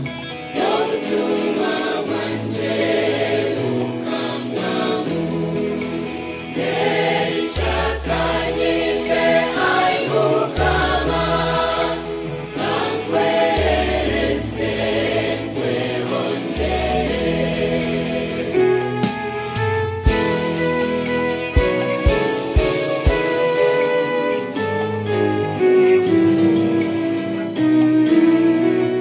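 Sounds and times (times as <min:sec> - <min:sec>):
gospel choir singing: 0:00.0 - 0:27.0.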